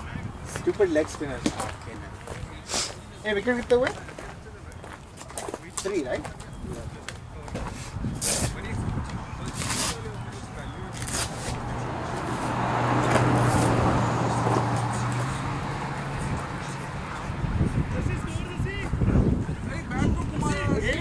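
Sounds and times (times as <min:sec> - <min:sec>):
faint voices: 0:00.0 - 0:21.0.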